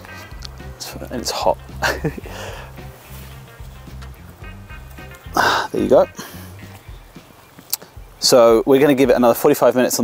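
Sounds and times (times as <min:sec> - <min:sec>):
faint background music: 0:00.0 - 0:10.0
man laughing: 0:01.6 - 0:02.8, 0:05.3 - 0:06.6.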